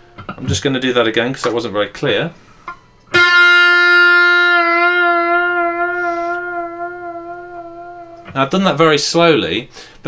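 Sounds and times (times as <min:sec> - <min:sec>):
electric guitar bent note: 0:02.7 - 0:08.5.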